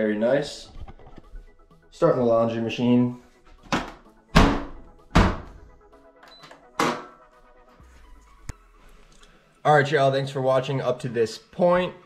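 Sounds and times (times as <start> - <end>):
background music: 0.0 - 12.0
washing machine door thunk: 3.7 - 5.6.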